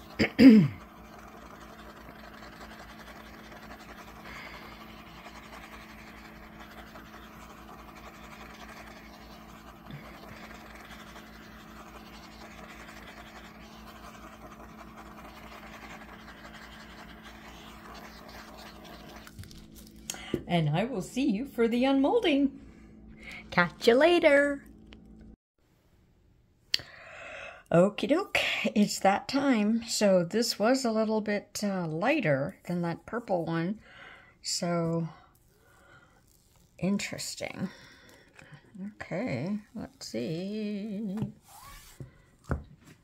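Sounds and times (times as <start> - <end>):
butane torch hissing: 0.0 - 19.3.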